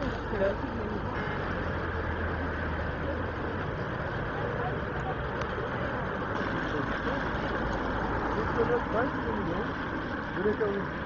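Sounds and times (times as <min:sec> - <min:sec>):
people's voices: 0:00.0 - 0:11.0
traffic noise: 0:00.0 - 0:11.0
vehicle engine rumble: 0:00.0 - 0:11.0.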